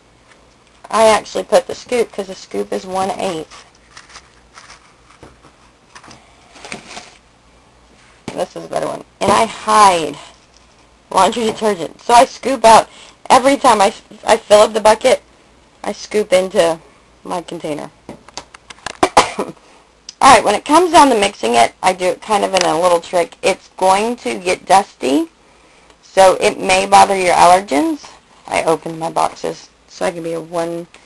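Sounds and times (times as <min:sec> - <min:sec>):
rustling: 0:03.0 - 0:07.3.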